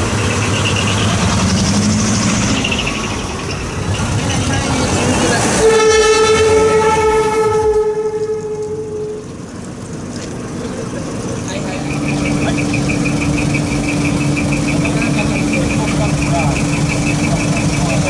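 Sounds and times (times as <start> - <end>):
truck engines idling: 0.0 - 18.0
truck air horn: 5.5 - 9.3.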